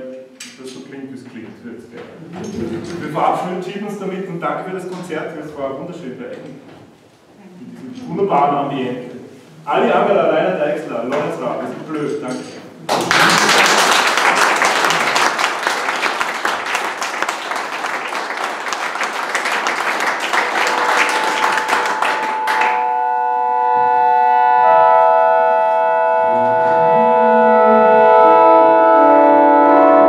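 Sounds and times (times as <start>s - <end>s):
audience applauding: 12.9s - 23.0s
organ chords: 20.2s - 30.0s.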